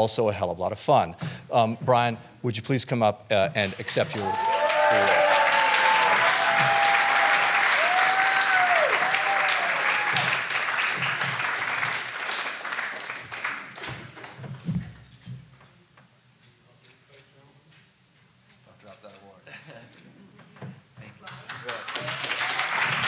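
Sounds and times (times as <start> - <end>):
audience applauding: 3.6 - 14.4, 21.3 - 23.0.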